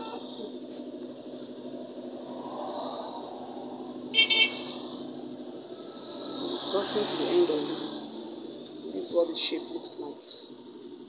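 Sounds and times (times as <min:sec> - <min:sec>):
short high horn toots: 0:04.1 - 0:04.8.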